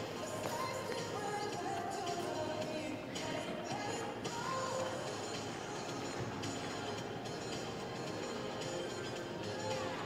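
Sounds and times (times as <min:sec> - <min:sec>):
music over pa system: 0:00.0 - 0:10.0.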